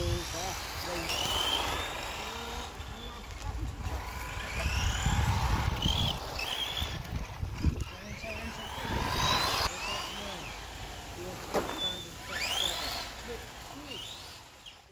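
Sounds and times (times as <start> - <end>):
rc car motors whining: 0.0 - 14.9
tyres and wind rumble: 0.0 - 14.9.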